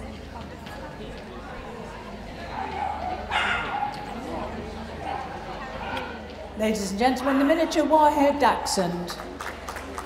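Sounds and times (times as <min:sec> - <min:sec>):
murmur of voices: 0:00.0 - 0:10.0
dog barking: 0:02.6 - 0:04.0, 0:05.1 - 0:06.2.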